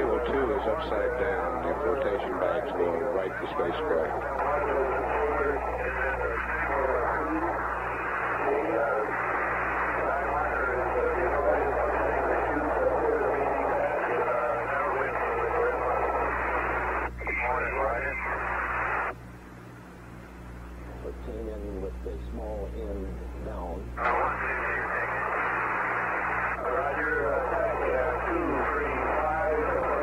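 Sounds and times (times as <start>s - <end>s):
radio hiss: 0.0s - 19.2s, 20.9s - 30.0s
low steady hum: 0.0s - 30.0s.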